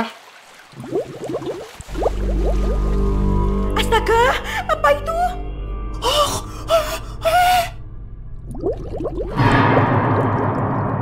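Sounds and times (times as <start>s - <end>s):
cartoon bubble bloops: 0.8s - 2.8s
low music drone: 2.1s - 11.0s.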